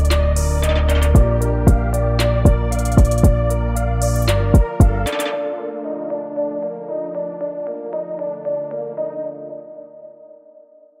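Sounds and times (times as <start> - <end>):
held synthesizer chord: 0.0 - 10.6.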